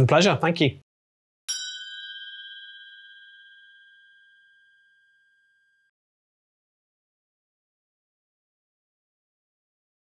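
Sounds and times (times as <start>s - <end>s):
bell chime ringing: 1.5s - 5.9s.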